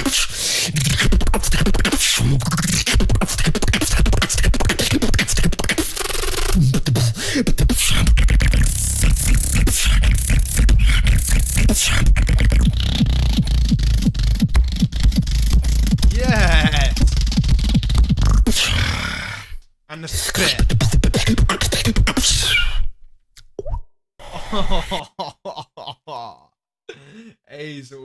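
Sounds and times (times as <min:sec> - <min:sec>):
person beatboxing: 0:00.0 - 0:22.9
heavy deep bass: 0:09.0 - 0:18.3
wavering vocal glide: 0:16.1 - 0:17.1.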